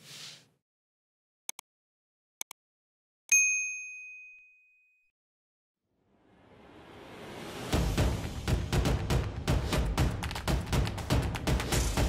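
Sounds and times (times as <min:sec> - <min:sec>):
bright bell ding: 0:03.3 - 0:05.1.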